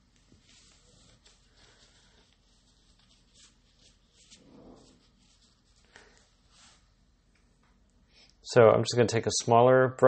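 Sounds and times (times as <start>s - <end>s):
soft brief scratching: 0.4s - 6.9s.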